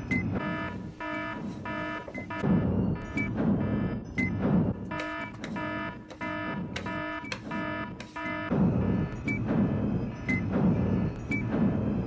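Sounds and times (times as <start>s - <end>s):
electronic alarm beeping: 0.0s - 12.0s.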